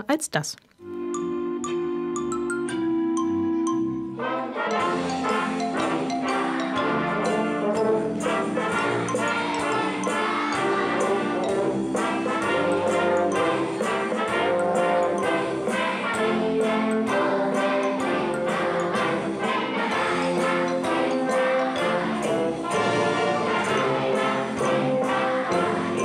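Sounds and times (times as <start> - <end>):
wind band playing: 0.8 - 26.0.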